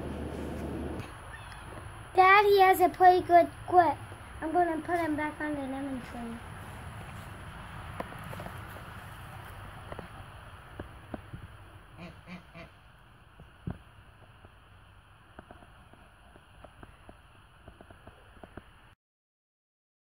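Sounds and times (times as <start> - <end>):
soft outdoor background: 0.0 - 19.0
leaves and twigs rustling: 6.1 - 11.3
animal short calls: 12.0 - 12.7.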